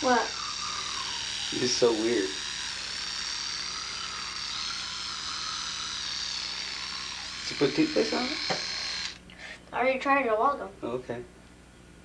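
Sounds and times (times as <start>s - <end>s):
electric toothbrush buzzing: 0.0s - 9.2s.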